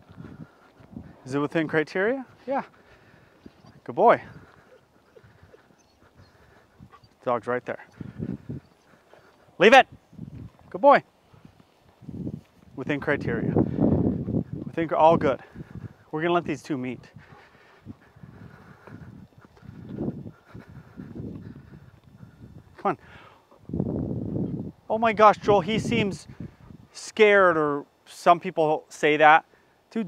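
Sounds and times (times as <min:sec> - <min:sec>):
dog footsteps on paved road: 0:10.3 - 0:22.2.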